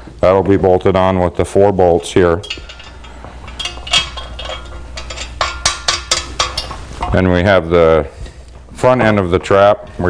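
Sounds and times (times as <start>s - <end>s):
metal parts clinking: 2.4s - 7.2s.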